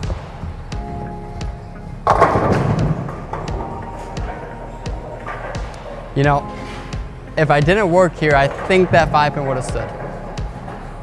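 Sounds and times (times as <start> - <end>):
bowling pins clattering: 0.0 - 11.0
bowling ball crashing into pins: 2.0 - 7.1, 8.1 - 11.0.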